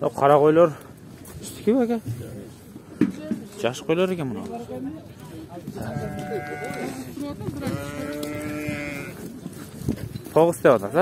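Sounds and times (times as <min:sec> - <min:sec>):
sheep bleating: 0:05.8 - 0:09.2.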